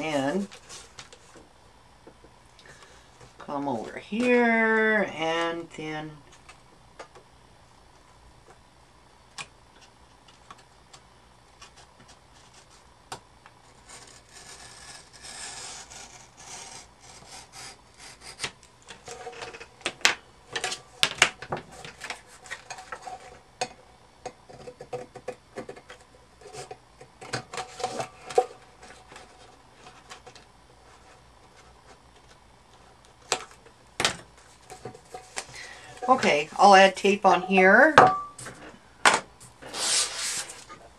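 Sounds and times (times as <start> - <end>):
craft knife scraping paper: 13.6 - 19.2, 39.6 - 40.7.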